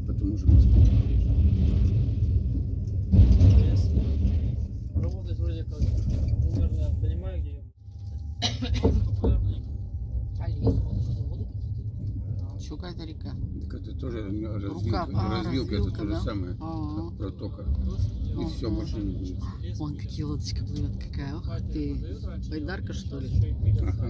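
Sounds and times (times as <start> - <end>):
train wheels rumbling on rails: 0.0 - 7.6, 8.6 - 24.0
people's voices: 12.4 - 24.0.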